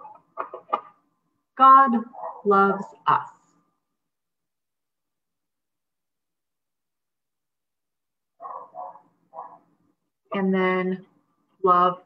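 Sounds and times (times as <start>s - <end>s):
dog barking: 2.1s - 2.5s, 8.4s - 9.7s.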